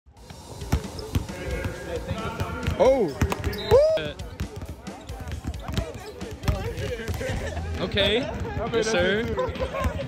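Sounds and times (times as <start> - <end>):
basketballs bouncing on hardwood: 0.6 - 10.0.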